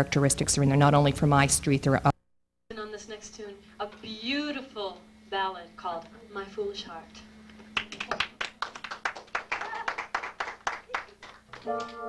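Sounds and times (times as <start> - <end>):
steady low hum: 2.7 - 12.0
sharp claps or taps: 7.7 - 12.0.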